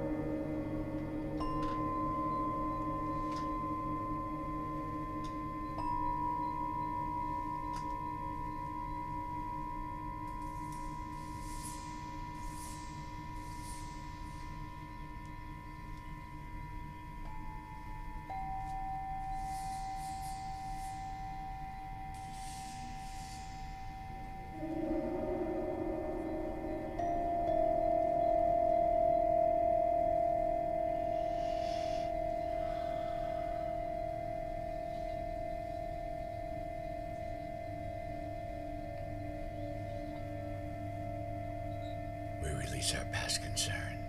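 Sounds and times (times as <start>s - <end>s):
metal singing bowls ringing: 0.0s - 42.8s
high chime-like shimmers: 0.0s - 44.0s.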